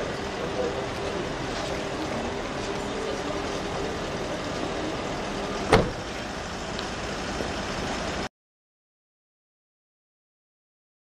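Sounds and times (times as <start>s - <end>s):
steady hum of vehicles: 0.0s - 8.3s
car door slamming shut: 5.6s - 6.2s.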